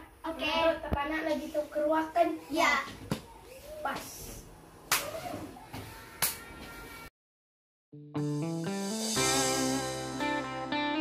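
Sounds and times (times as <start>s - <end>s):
hand slapping hand: 4.9s - 5.2s.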